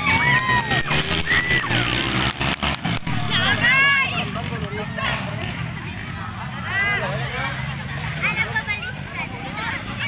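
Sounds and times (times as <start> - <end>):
spectators shouting: 0.0 - 5.2
racing motorcycle engines droning: 0.0 - 10.0.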